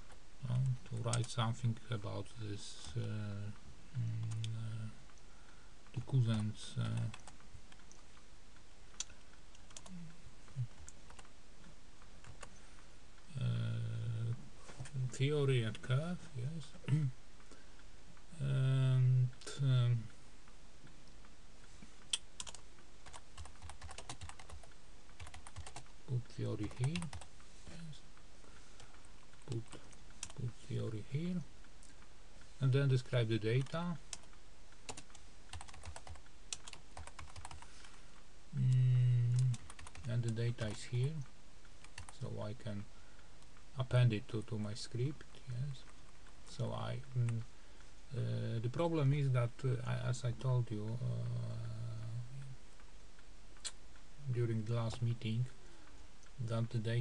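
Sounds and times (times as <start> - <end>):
faint steady hiss: 0.0 - 57.0
keyboard typing clicks: 9.0 - 10.0, 22.1 - 25.9, 26.6 - 27.3, 33.6 - 37.6, 38.7 - 40.8.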